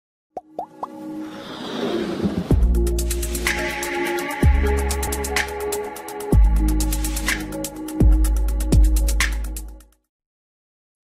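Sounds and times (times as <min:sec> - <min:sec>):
electronic music build: 0:00.4 - 0:09.8.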